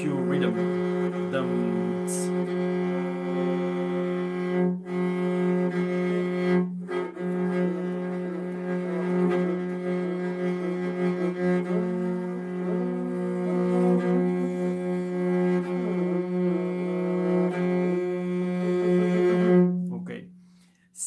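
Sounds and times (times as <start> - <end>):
bowed fiddle with drone: 0.0 - 20.0.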